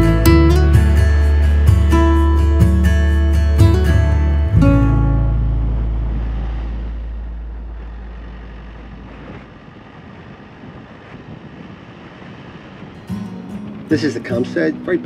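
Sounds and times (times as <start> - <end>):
background music: 0.0 - 7.5
road noise of moving vehicle: 0.0 - 15.0.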